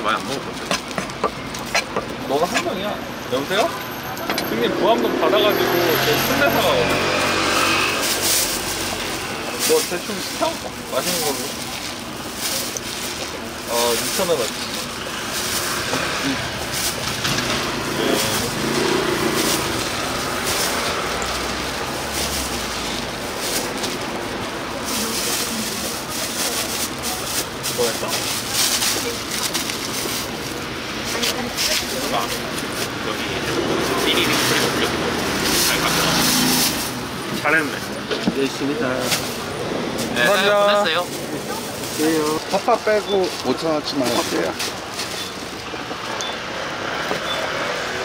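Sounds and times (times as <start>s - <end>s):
traffic hum: 0.0s - 48.0s
voices: 0.0s - 48.0s
plastic bags rustling: 5.9s - 46.2s.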